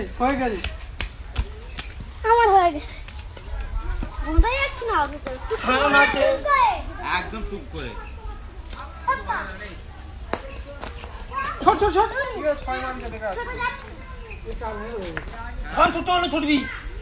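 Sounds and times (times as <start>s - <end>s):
children shouting: 16.3s - 17.0s.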